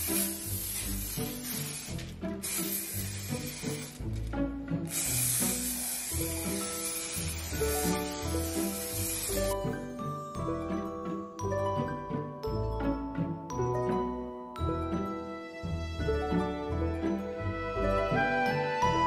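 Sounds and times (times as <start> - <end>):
aerosol spray hissing: 0.0 - 4.2, 4.9 - 9.6
background music: 0.0 - 19.0.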